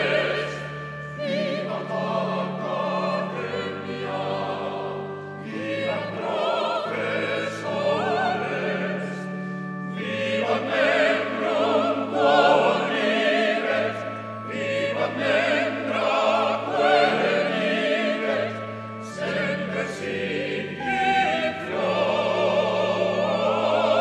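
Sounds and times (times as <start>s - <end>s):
choir singing a hymn: 0.0s - 24.0s.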